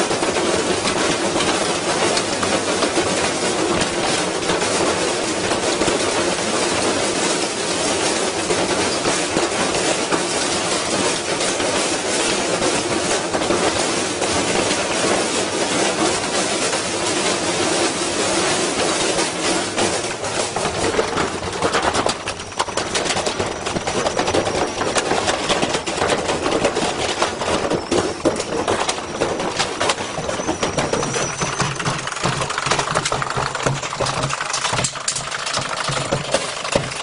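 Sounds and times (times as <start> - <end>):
washing machine banging and rattling: 0.0 - 37.0.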